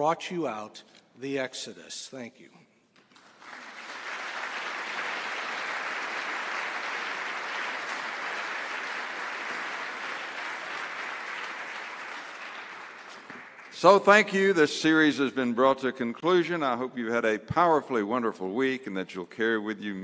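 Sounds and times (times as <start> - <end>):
audience applauding: 3.1 - 14.0.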